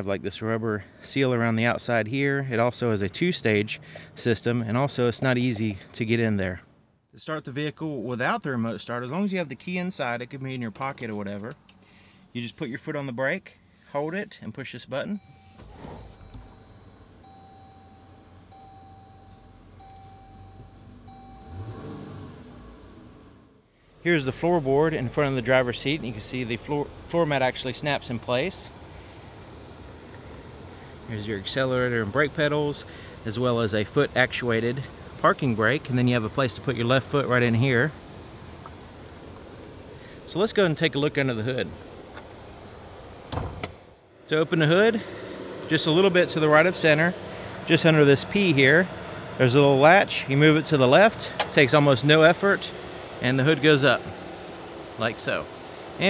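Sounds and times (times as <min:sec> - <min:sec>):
warning chime: 0:15.0 - 0:23.0
car engine idling: 0:15.2 - 0:43.4, 0:44.0 - 0:56.0
car latch clunk: 0:43.3 - 0:43.8, 0:51.3 - 0:51.6.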